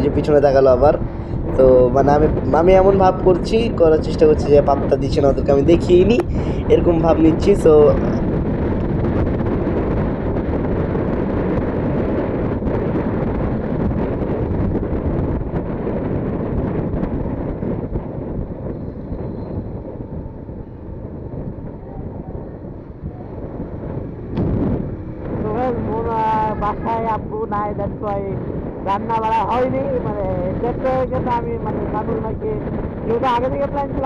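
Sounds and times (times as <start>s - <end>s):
man's voice: 0.0s - 8.2s, 25.4s - 34.0s
motorcycle engine and road noise: 0.0s - 34.0s
wind buffeting microphone: 0.0s - 34.0s.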